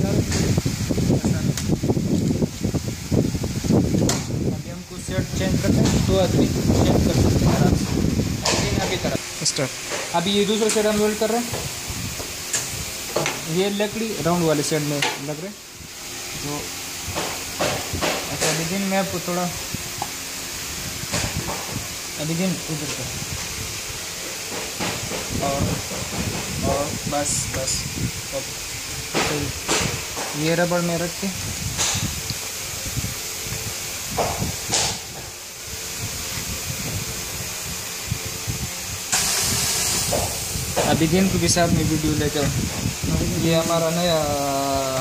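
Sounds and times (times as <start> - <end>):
short hissing noises: 5.4 - 45.0
compressed air puff: 38.9 - 41.1.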